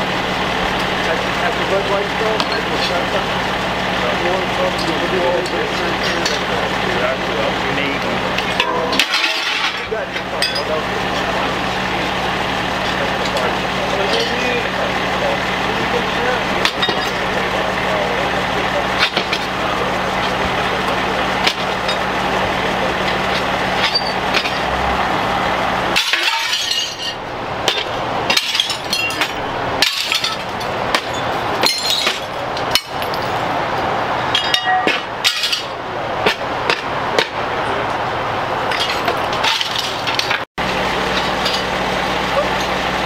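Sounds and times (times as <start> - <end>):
steady engine hum: 0.0 - 43.0
voices: 0.0 - 43.0
broken glass clinking and cracking: 8.4 - 11.3, 12.8 - 14.5, 16.6 - 17.4, 23.1 - 24.7, 26.0 - 33.5, 34.3 - 36.4, 38.7 - 40.4, 41.1 - 41.8.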